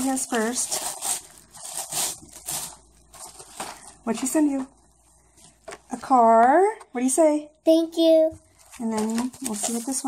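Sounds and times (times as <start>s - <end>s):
gift wrapping crinkling: 0.0s - 4.7s, 8.5s - 10.0s.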